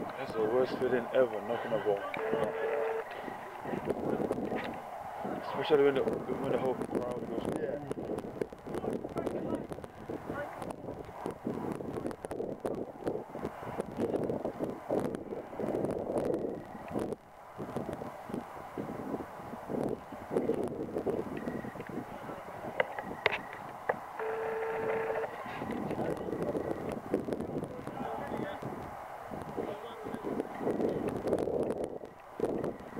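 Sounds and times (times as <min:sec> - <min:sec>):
indistinct voices calling out: 0:00.2 - 0:04.2
short held call: 0:01.6 - 0:03.7.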